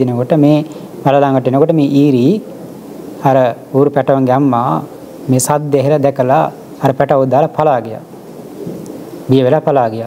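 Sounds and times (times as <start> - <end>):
man preaching: 3.2 - 8.1, 9.3 - 10.0.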